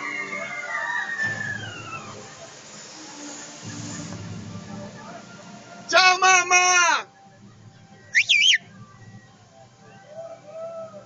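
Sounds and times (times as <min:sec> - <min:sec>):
high whistled call: 0:01.4 - 0:02.3, 0:08.0 - 0:10.4.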